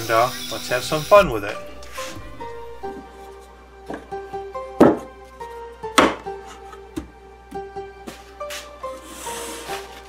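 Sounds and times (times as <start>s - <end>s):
background music with held notes: 0.0s - 10.0s
wooden block knocking into tray: 4.8s - 5.1s, 6.0s - 6.3s.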